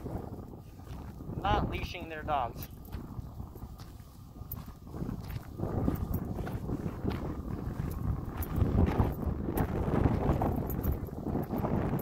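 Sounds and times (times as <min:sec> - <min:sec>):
footsteps on a path: 0:00.0 - 0:12.0
wind rumble on microphone: 0:00.0 - 0:12.0.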